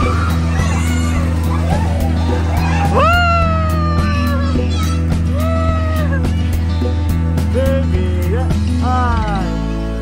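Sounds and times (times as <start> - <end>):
background music with bass: 0.0 - 10.0
high voice-like cry: 2.6 - 6.5.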